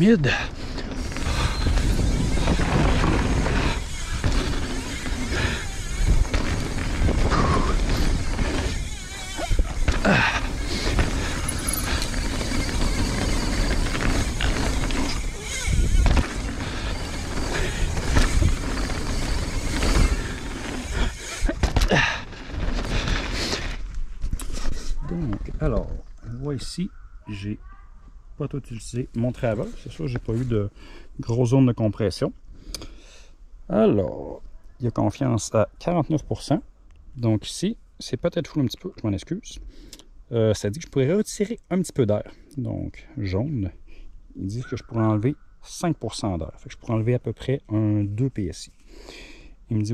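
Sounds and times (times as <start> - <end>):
bike tyre noise on dirt: 0.0 - 26.1
bike knocks and rattles: 0.7 - 24.4.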